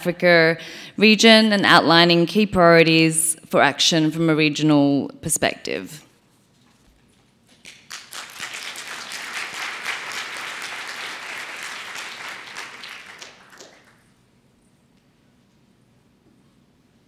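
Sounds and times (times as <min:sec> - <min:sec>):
audience applauding: 0:07.5 - 0:14.1.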